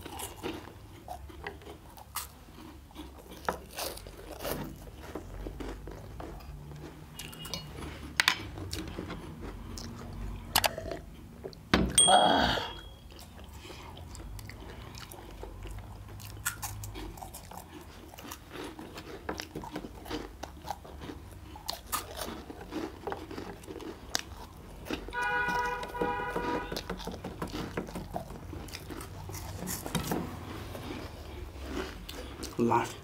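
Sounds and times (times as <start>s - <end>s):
crunching and chewing: 0.0s - 11.7s, 13.0s - 33.0s.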